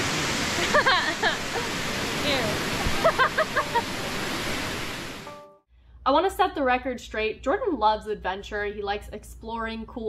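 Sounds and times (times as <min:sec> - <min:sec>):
creek water rushing: 0:00.0 - 0:05.3
woman laughing: 0:00.6 - 0:01.8, 0:02.8 - 0:03.9
woman speaking: 0:02.2 - 0:02.6, 0:06.1 - 0:10.0.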